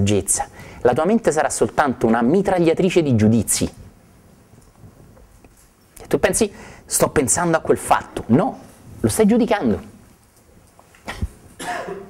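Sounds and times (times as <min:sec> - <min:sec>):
person coughing: 0:11.0 - 0:12.0.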